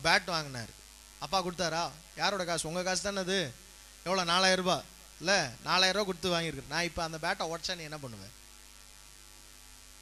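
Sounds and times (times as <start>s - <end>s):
man speaking: 0.0s - 8.3s
low electrical mains hum: 0.0s - 10.0s.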